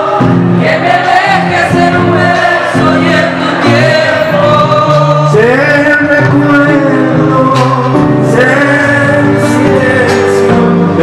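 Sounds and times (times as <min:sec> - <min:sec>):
guitars playing: 0:00.0 - 0:11.0
voices singing together: 0:00.0 - 0:11.0.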